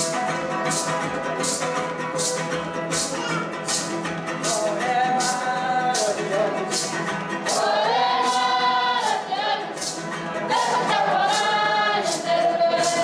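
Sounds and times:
light regular beat: 0.0s - 13.0s
choir singing held notes: 4.7s - 13.0s.

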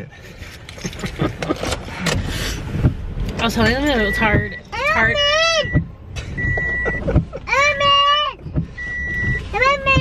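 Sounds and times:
car cabin rumble: 0.0s - 10.0s
short electronic beep: 6.4s - 7.0s, 8.8s - 9.5s.

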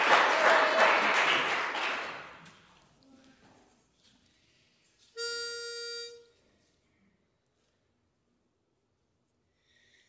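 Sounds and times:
pitch pipe note: 5.2s - 6.4s.

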